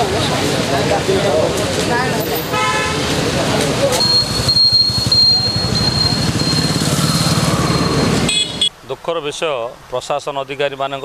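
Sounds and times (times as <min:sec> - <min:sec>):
people talking: 0:00.0 - 0:06.8, 0:08.9 - 0:11.0
vehicles passing: 0:00.0 - 0:11.0
vehicle horn toot: 0:02.5 - 0:03.0, 0:07.8 - 0:08.7.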